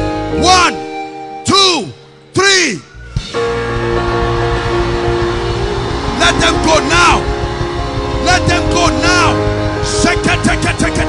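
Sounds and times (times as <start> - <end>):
heavy rumbling bass: 3.0 - 11.0
church keyboard sustained chord: 3.2 - 11.0
dense wash of noise: 3.2 - 11.0.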